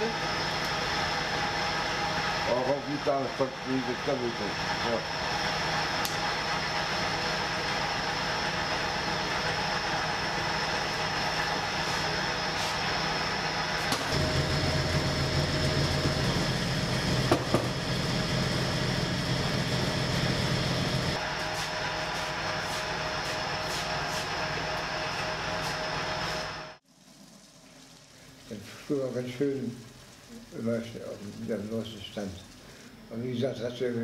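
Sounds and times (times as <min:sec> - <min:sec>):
bakery machinery drone: 0:00.0 - 0:26.8
deep loud hum: 0:01.4 - 0:23.8.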